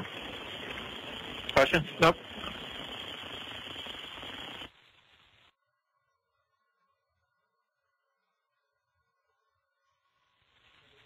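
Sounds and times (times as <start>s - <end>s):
radio channel hiss: 0.0s - 5.5s, 10.1s - 11.0s
person speaking over radio: 1.5s - 2.5s.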